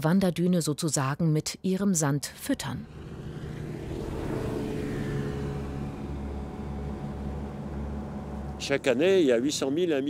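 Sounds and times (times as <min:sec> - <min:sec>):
motorboat engine droning: 0:02.7 - 0:10.0.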